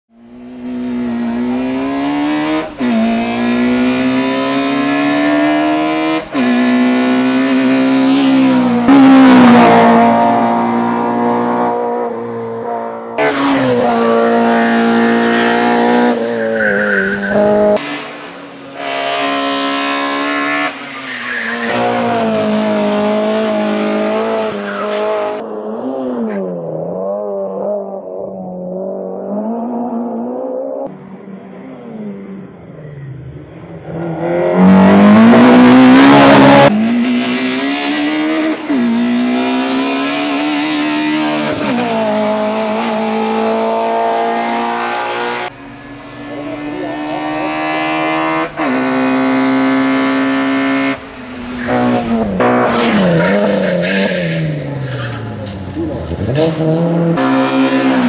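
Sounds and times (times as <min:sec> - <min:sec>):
race car engine at high revs: 0:00.1 - 0:58.0.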